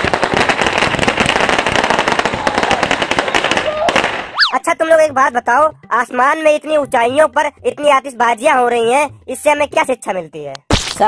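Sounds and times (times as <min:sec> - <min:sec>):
fireworks crackling: 0:00.0 - 0:04.4.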